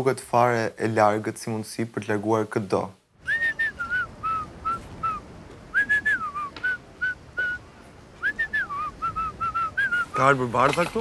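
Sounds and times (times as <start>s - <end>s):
person whistling a tune: 3.2s - 7.6s, 8.2s - 10.2s.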